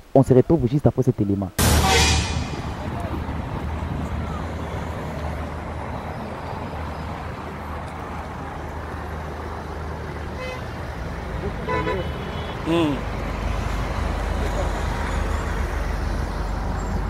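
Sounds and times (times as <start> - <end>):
passing city traffic: 1.6 - 17.0.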